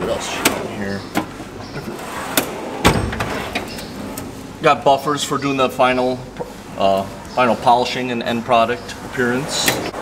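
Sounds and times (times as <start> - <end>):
steel drawers sliding: 0.2 - 4.4
drawer banging shut: 2.4 - 3.7.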